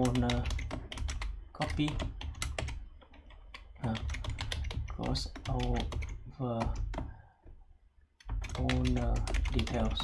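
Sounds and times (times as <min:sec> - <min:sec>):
computer keyboard typing: 0:00.0 - 0:07.2, 0:08.2 - 0:10.0.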